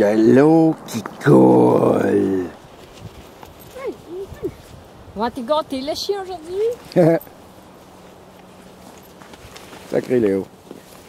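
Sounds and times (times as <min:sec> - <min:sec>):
footsteps on packed snow: 0:06.3 - 0:11.0.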